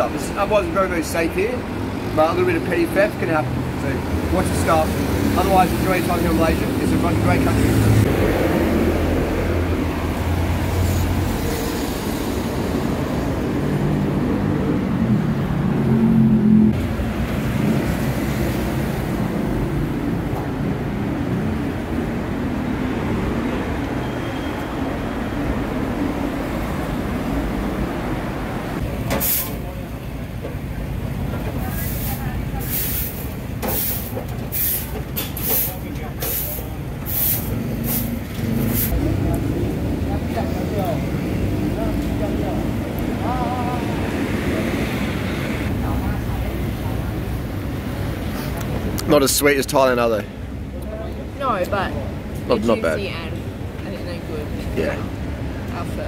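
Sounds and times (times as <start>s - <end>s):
traffic rumble: 0.0s - 56.0s
people's voices: 29.0s - 56.0s.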